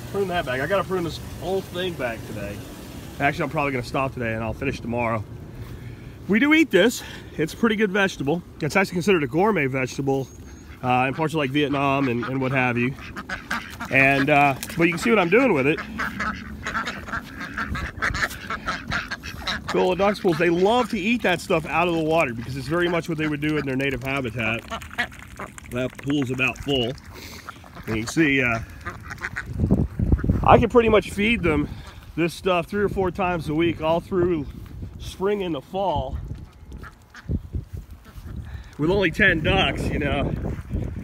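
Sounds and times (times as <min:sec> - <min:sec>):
ducks quacking: 0:00.0 - 0:41.0.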